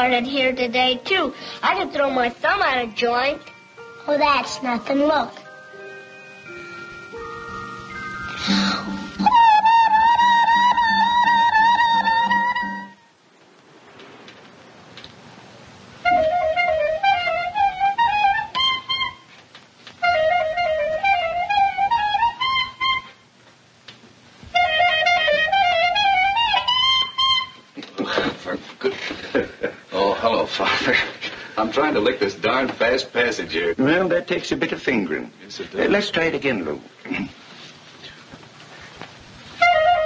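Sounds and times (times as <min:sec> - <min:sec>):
clarinet playing: 0:05.6 - 0:13.2, 0:16.0 - 0:19.4, 0:20.0 - 0:23.4, 0:24.4 - 0:27.8, 0:39.5 - 0:40.0.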